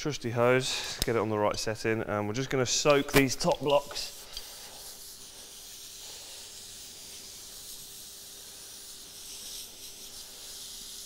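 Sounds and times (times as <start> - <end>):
hose spray nozzle hissing: 2.8 - 11.0.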